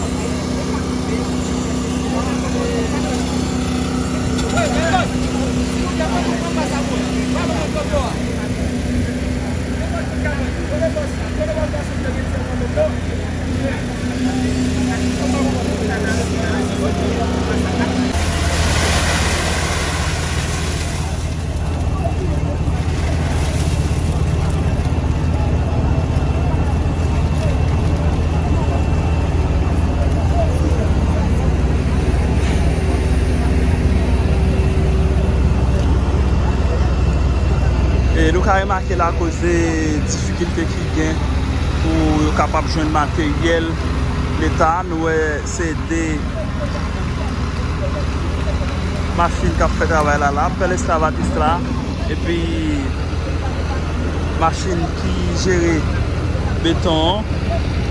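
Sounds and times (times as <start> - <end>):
construction machinery engines running: 0.0 - 57.9
workers' voices: 0.0 - 57.9
rushing noise: 13.9 - 21.6.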